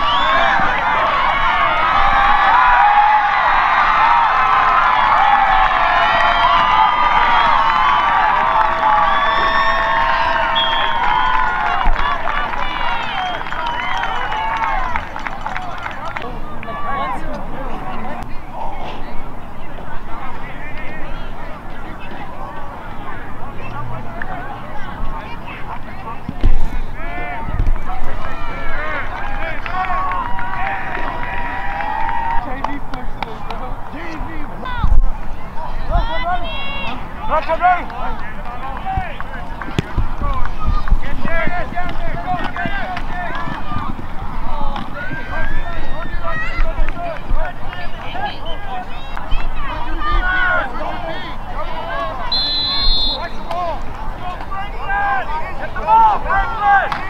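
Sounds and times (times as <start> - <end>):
crowd cheering and yelling: 0.0 - 57.0.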